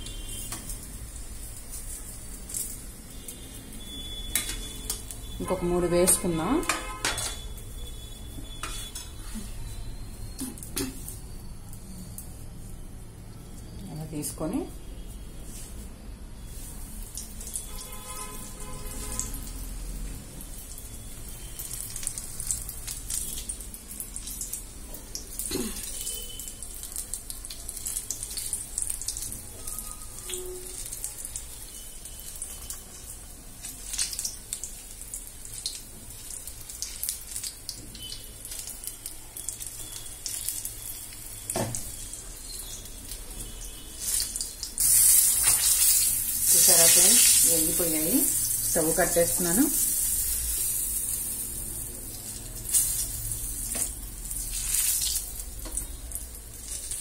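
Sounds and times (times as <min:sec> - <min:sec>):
chillies sizzling in hot oil: 0:00.0 - 0:57.0.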